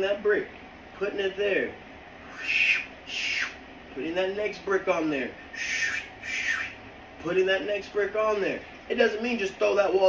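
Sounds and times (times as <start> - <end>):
puppy high-pitched cries: 5.6 - 6.8.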